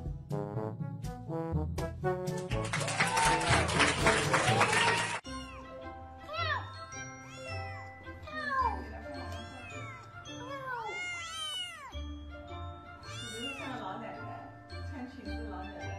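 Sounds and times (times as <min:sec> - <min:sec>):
background music with steady beat: 0:00.0 - 0:04.7
kitten meowing: 0:09.2 - 0:12.0, 0:13.0 - 0:13.8.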